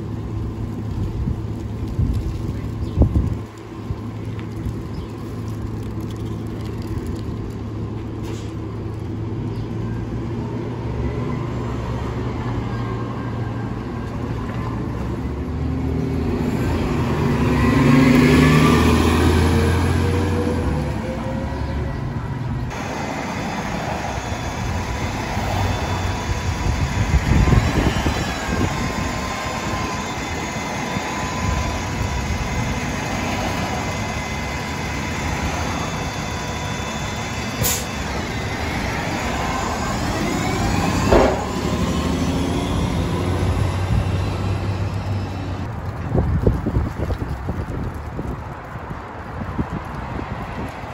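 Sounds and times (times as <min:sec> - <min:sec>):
bus engine whine: 0:00.0 - 0:47.7
bus engine passing: 0:00.0 - 0:50.9.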